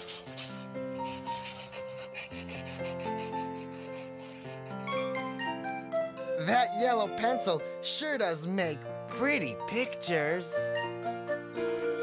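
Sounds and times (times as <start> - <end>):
pencil scribbling: 0.0 - 5.8
soft background music: 0.0 - 12.0.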